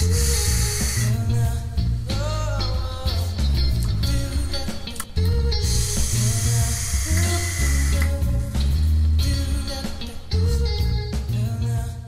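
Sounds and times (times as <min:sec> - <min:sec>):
music with heavy bass line: 0:00.0 - 0:12.0
bright hissing wash: 0:05.6 - 0:08.9.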